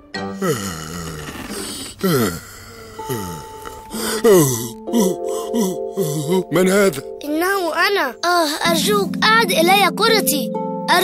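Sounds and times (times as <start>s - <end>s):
cartoon voice low falling groan: 0.4s - 6.6s.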